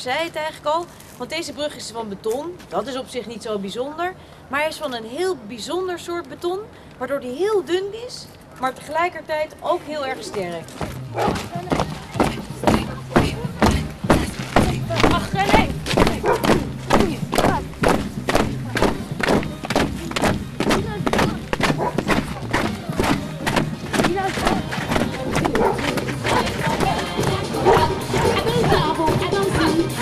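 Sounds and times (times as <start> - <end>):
voices: 0.0 - 30.0
footsteps thudding on concrete: 10.3 - 29.7
music: 10.8 - 30.0.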